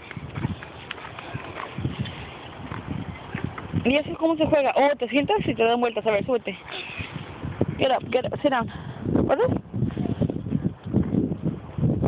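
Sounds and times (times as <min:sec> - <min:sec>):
footsteps on rubber surface: 0:00.0 - 0:04.5.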